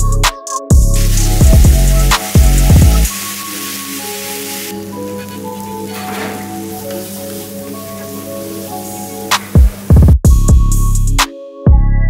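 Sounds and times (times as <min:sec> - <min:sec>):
heavy bass beat: 0:00.0 - 0:03.1, 0:09.3 - 0:11.8
background music with held notes: 0:00.0 - 0:12.0
gravy sizzling on griddle: 0:00.8 - 0:09.8.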